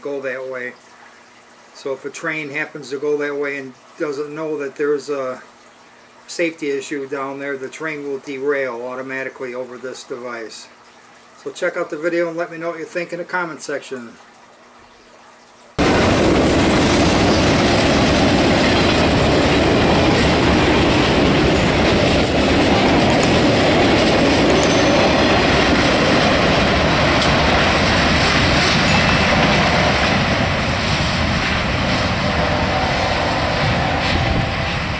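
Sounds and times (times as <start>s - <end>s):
freight train wheels rumbling: 15.8s - 34.9s.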